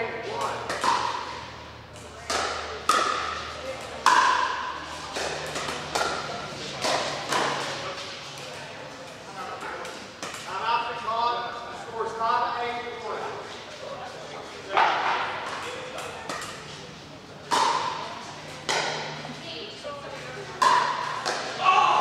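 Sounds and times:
paddles hitting plastic ball: 0:00.4 - 0:01.3, 0:02.0 - 0:07.8, 0:17.5 - 0:18.0
people talking: 0:02.0 - 0:22.0.

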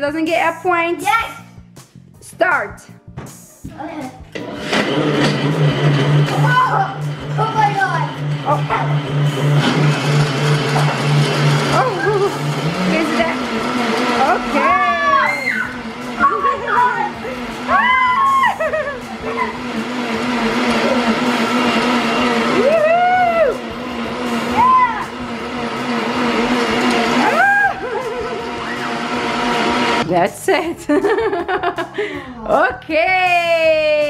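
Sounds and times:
blender motors humming: 0:04.3 - 0:30.1
high rising and falling cries: 0:07.7 - 0:30.0.

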